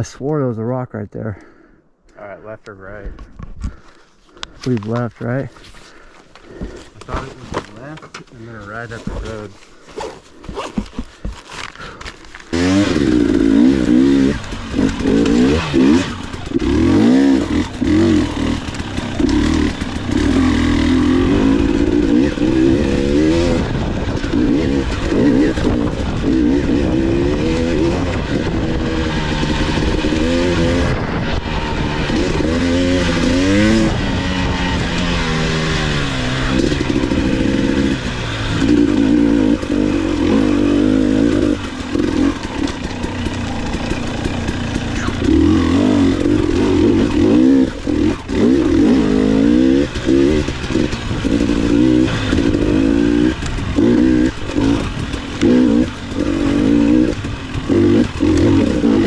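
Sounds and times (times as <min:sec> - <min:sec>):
dirt bike engine revving: 0:06.0 - 0:59.0.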